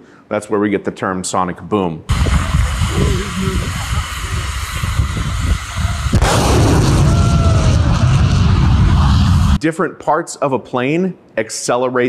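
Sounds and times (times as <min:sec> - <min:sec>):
jet engines roaring: 0:02.1 - 0:09.6
low steady rumble: 0:02.1 - 0:09.6
sonic boom: 0:02.1 - 0:09.6.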